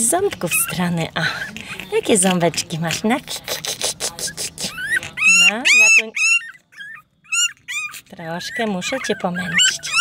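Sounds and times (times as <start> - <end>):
puppy whimpering high-pitched: 0.3 - 10.0.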